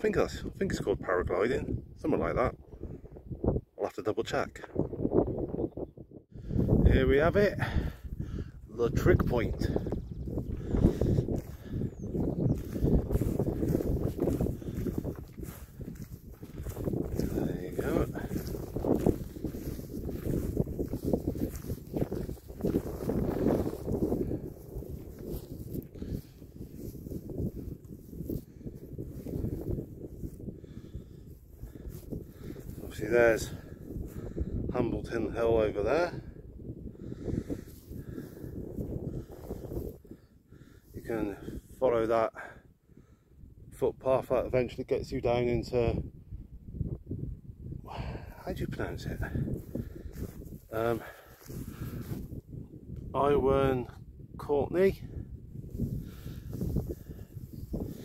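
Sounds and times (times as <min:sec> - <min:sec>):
wind buffeting microphone: 0:00.0 - 0:44.0, 0:44.8 - 0:58.0.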